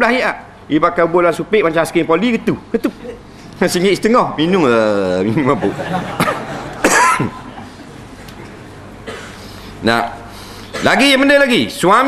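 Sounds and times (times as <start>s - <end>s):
man coughing: 6.2s - 7.5s, 9.0s - 9.5s, 10.7s - 11.0s.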